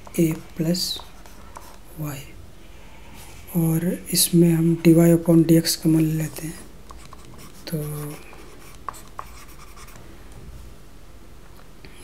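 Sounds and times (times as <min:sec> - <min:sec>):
stylus scratching on tablet: 0:00.0 - 0:02.0, 0:06.9 - 0:10.0.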